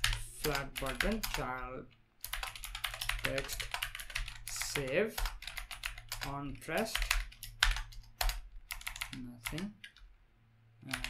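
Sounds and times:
typing on computer keyboard: 0.0 - 10.1.

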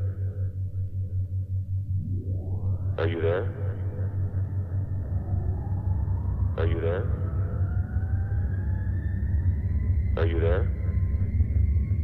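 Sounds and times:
rising synth tone: 1.8 - 10.1.

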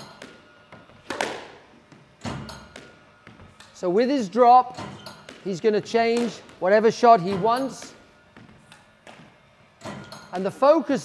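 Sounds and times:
squash ball impacts: 0.0 - 3.8, 4.4 - 10.7.

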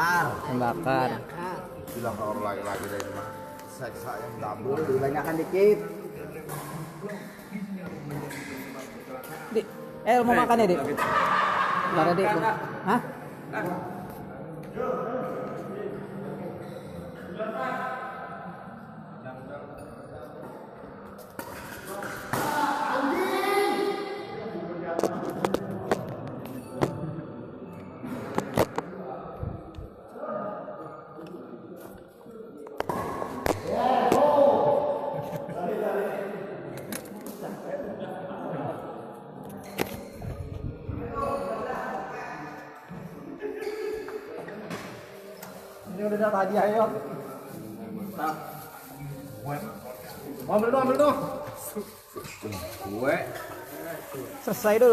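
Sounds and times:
people talking in echoing hall: 0.0 - 54.9.

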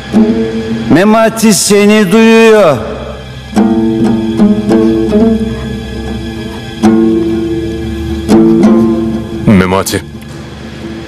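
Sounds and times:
low sustained hum: 0.0 - 1.0, 2.8 - 11.0
plucked string notes: 0.0 - 1.0, 3.5 - 11.0.

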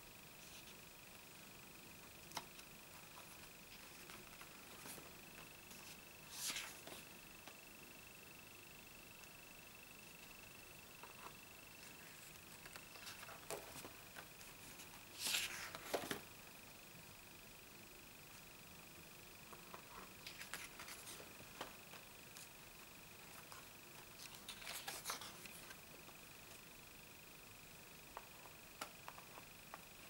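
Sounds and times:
paper pages flipping: 3.2 - 7.1, 11.0 - 16.2, 19.7 - 21.7, 23.4 - 25.8.

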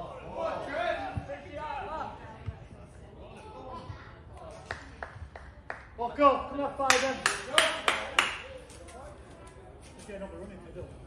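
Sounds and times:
sharp hand claps: 6.9 - 8.5.

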